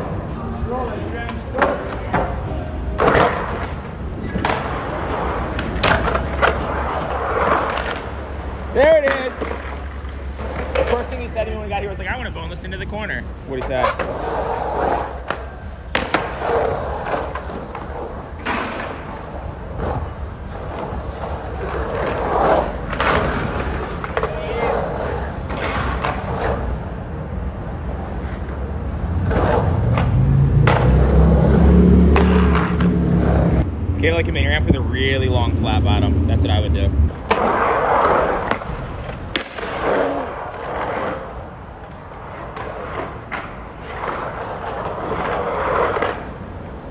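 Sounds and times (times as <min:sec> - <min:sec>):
skateboard wheels rolling on concrete: 0:00.0 - 0:46.9
skateboard clacks: 0:03.0 - 0:08.1, 0:08.8 - 0:11.4, 0:13.6 - 0:27.0, 0:29.2 - 0:33.6, 0:37.1 - 0:46.9
skateboard landing clack: 0:15.2 - 0:16.4, 0:18.4 - 0:19.3, 0:38.4 - 0:39.9.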